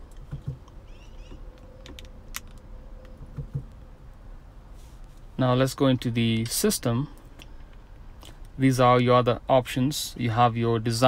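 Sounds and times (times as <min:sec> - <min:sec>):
faint steady hum: 0:00.0 - 0:11.0.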